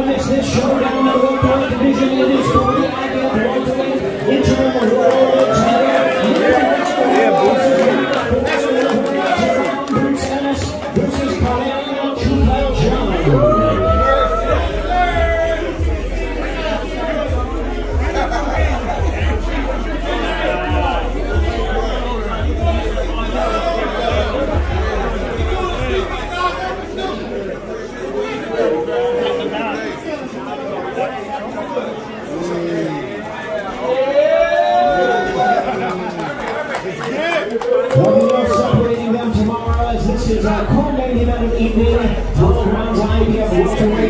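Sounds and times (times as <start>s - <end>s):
indistinct chatter of voices: 0.0s - 44.0s
music with low beat: 12.2s - 27.2s, 39.7s - 44.0s.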